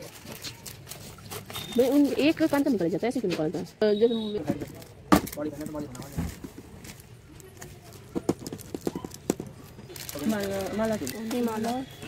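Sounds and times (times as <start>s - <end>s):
plastic packets and box clicking: 0.0s - 2.6s, 4.4s - 12.0s.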